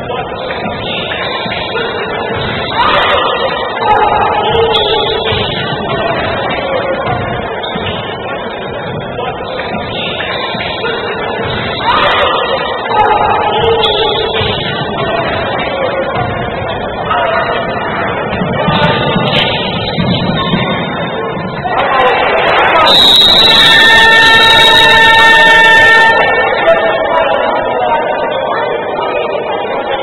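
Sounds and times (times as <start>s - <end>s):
voices in hall: 0.0s - 30.0s
loud buzzing game horn: 22.9s - 26.6s.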